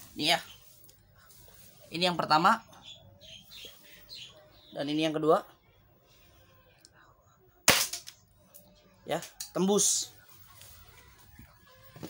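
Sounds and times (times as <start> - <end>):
airsoft pistol shot: 7.7 - 8.1.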